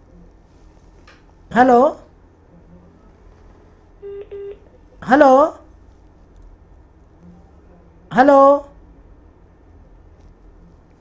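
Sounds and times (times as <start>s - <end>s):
telephone beeps: 4.0s - 4.8s.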